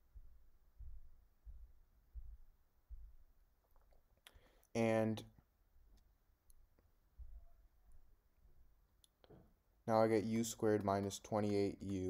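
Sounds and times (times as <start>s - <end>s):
short breath: 4.3s - 4.7s.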